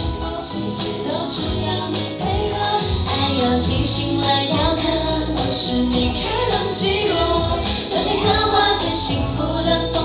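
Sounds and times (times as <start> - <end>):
backing track: 0.0 - 10.0
two women singing a pop duet: 0.0 - 10.0.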